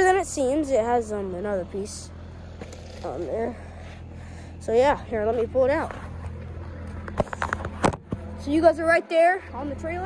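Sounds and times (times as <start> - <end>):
engine humming: 0.0 - 10.0.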